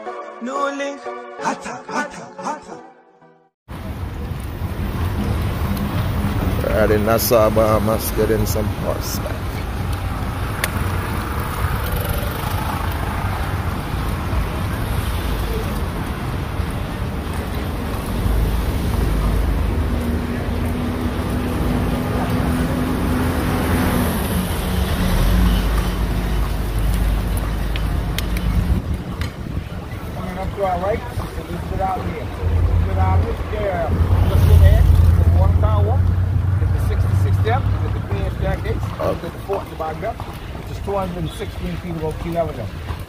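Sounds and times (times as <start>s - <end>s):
street traffic road noise: 3.7s - 43.0s.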